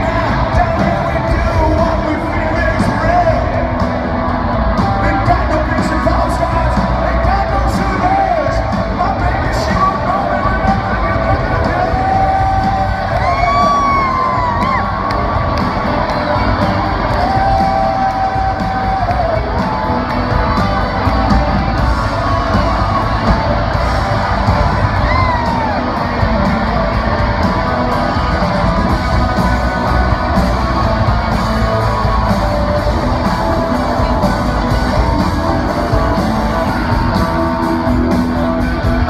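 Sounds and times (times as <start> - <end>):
live rock band echoing: 0.0 - 39.0.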